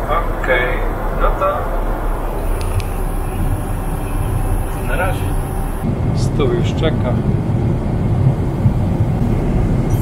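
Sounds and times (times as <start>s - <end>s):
airplane cabin engine drone: 0.0s - 10.0s.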